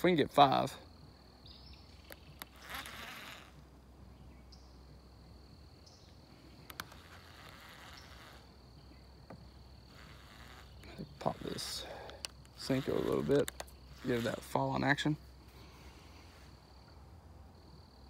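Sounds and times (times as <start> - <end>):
high-pitched insect drone: 1.0 - 3.6, 4.5 - 15.2
fishing reel clicks: 2.0 - 3.6, 6.6 - 8.5, 9.9 - 14.6
fishing reel whirring: 2.1 - 3.6, 6.5 - 8.7, 9.6 - 15.0.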